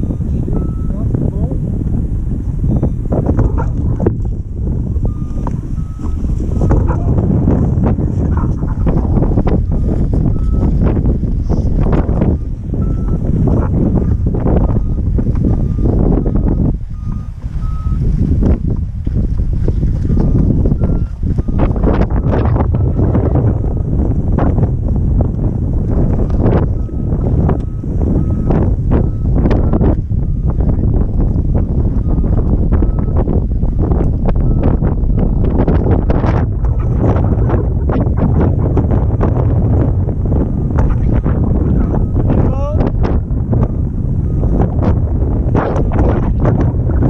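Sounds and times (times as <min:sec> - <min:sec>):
variometer beeps: 0:00.0 - 0:01.6, 0:02.6 - 0:18.6, 0:20.0 - 0:24.0, 0:25.9 - 0:39.8, 0:40.4 - 0:42.8, 0:43.6 - 0:46.2
wind buffeting microphone: 0:00.0 - 0:47.0.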